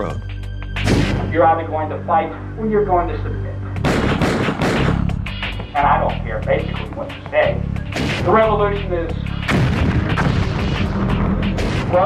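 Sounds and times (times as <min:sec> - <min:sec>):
low music bed: 0:00.0 - 0:12.0
gunshots: 0:00.8 - 0:01.4, 0:03.8 - 0:05.1, 0:07.9 - 0:08.5, 0:09.5 - 0:12.0.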